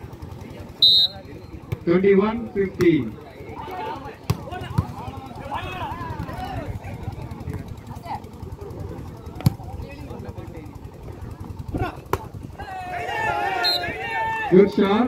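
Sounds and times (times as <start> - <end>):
crowd murmur: 0.0 - 15.0
voices calling out: 0.0 - 15.0.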